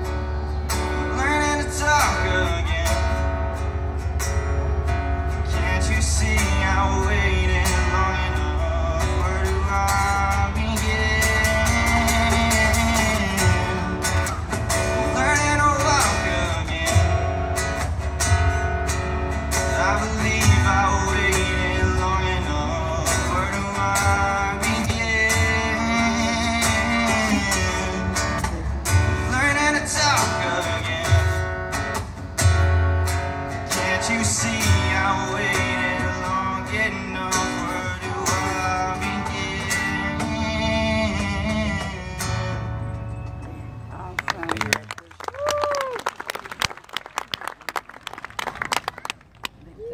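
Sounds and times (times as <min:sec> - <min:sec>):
acoustic guitar strumming: 0:00.0 - 0:44.5.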